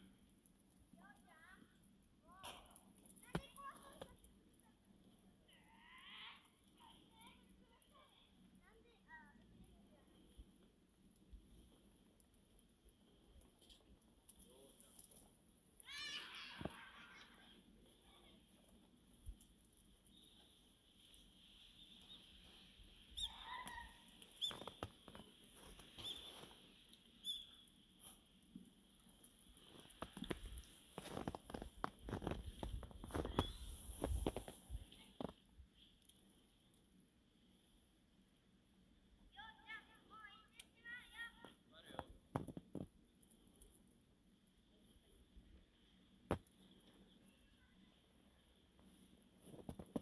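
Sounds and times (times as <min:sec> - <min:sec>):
distant children calling out: 0:15.8 - 0:18.6, 0:23.2 - 0:24.4
faint high-pitched chirps: 0:20.0 - 0:22.4, 0:27.2 - 0:27.8.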